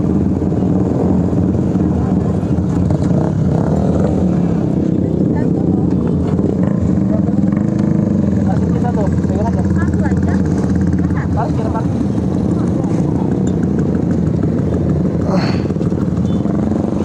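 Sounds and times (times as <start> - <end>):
motorcycle engines idling: 0.0 - 17.0
people talking: 1.9 - 2.9, 4.8 - 13.5.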